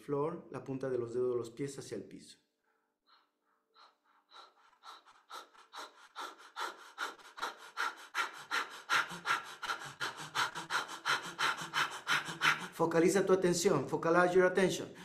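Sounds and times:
man breathing rapidly: 2.7s - 12.9s.

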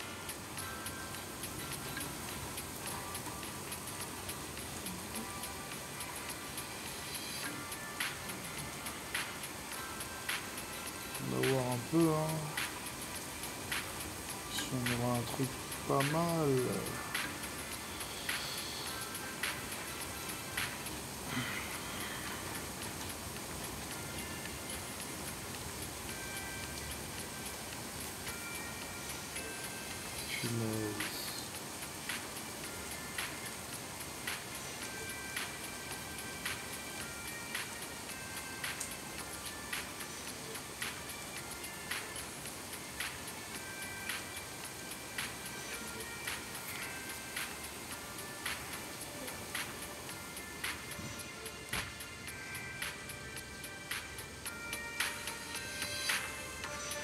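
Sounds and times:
heavy rain hiss: 0.0s - 57.0s
soft background music: 0.0s - 57.0s
light high ticks: 29.2s - 38.0s, 38.6s - 52.0s.

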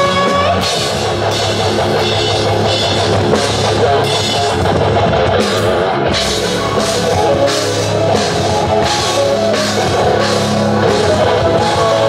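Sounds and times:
drum kit beat: 0.0s - 12.0s
electric bass guitar: 0.0s - 12.0s
keyboard: 0.0s - 12.0s
live rock band playing: 0.0s - 12.0s.

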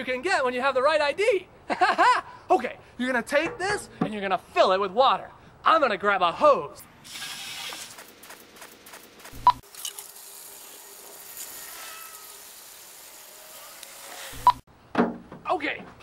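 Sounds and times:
water from hose into plastic jug: 7.0s - 8.0s, 9.6s - 14.6s.

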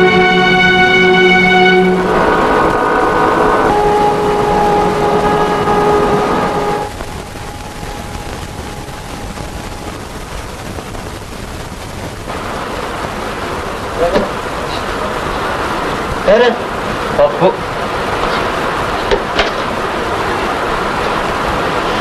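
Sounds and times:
orchestral string chords: 0.0s - 9.9s
steady toneless noise: 0.0s - 22.0s.

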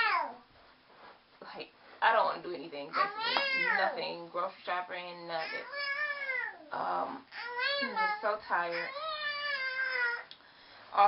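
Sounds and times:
young child whining cry: 0.0s - 0.4s, 3.0s - 3.8s, 5.5s - 6.7s, 7.3s - 10.3s.

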